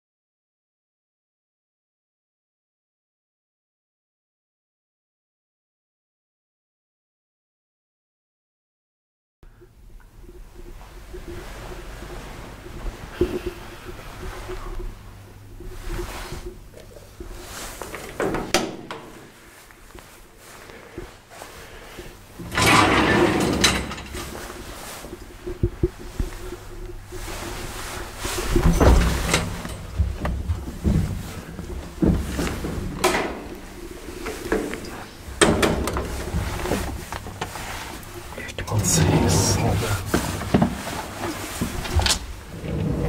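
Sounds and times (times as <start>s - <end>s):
elevator hum: 9.5s - 43.0s
elevator doors clunking and rattling: 22.4s - 25.0s, 28.4s - 37.6s, 38.7s - 43.0s.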